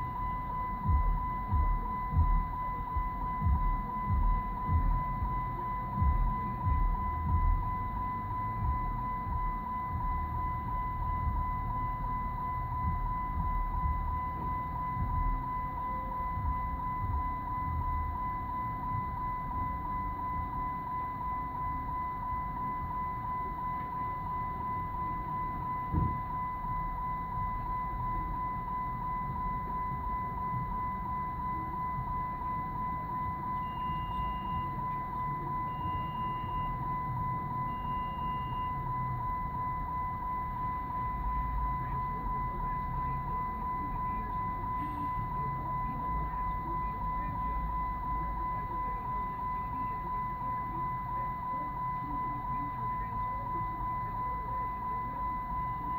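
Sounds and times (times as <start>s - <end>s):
high-pitched electronic tone: 0.0s - 55.9s
short high beeps: 0.0s - 55.9s.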